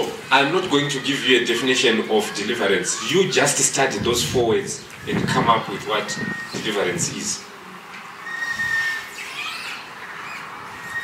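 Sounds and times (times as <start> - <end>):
birds calling: 0.0 - 7.5, 8.1 - 11.0.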